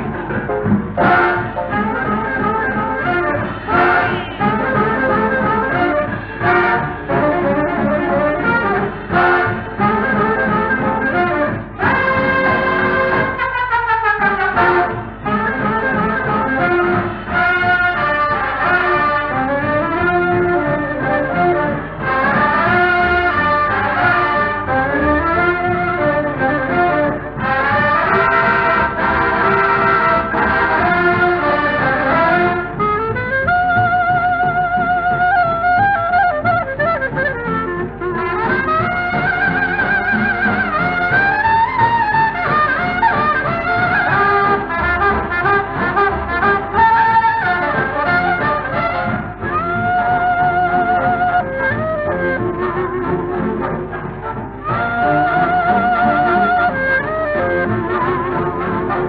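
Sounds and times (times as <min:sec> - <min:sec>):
boogie-woogie dance-band record: 0:00.0 - 0:59.0.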